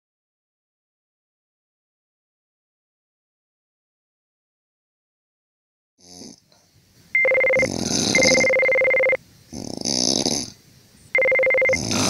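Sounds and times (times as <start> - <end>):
exaggerated snoring: 6.0 - 6.4, 7.5 - 10.6, 11.5 - 12.0.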